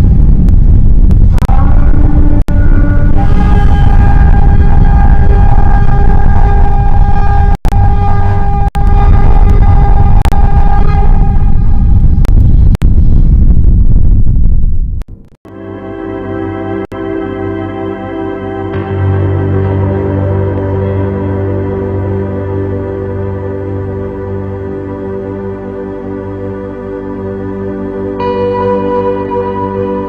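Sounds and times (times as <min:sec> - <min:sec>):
heavy low rumble: 0:00.0 - 0:15.4
sustained high tone: 0:01.5 - 0:12.2.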